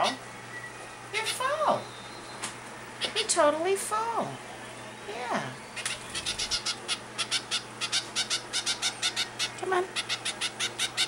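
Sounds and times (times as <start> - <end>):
finch chick chirping: 5.8 - 11.0.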